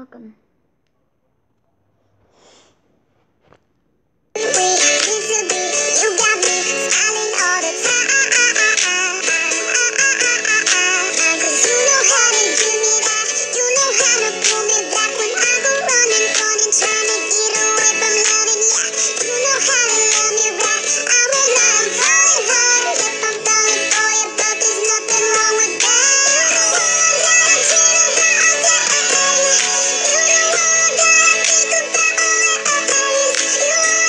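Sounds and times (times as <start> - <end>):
backing track: 4.4 - 34.0
sped-up high voices singing pop song: 4.4 - 34.0.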